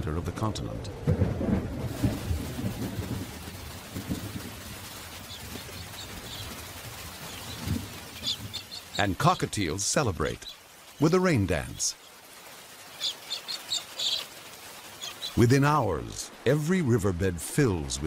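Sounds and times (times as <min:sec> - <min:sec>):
rain hissing: 0:00.3 - 0:18.0
thunder rumbling: 0:00.8 - 0:10.5
cockatiels chirping: 0:07.2 - 0:09.4, 0:12.9 - 0:14.3.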